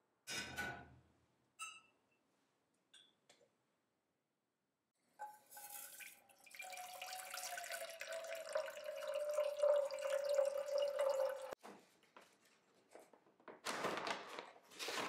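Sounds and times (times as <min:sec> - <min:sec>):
water pouring into saucepan: 0:05.2 - 0:11.6.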